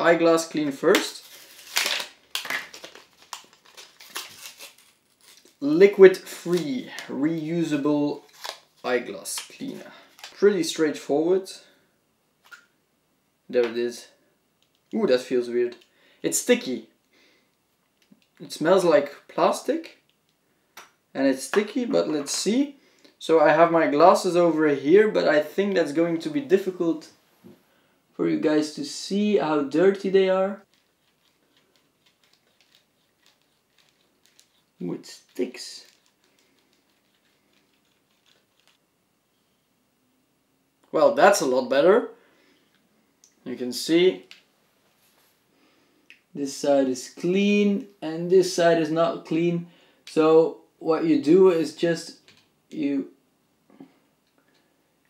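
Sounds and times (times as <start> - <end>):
plastic packaging rustling: 0.6 - 10.4, 30.7 - 38.8.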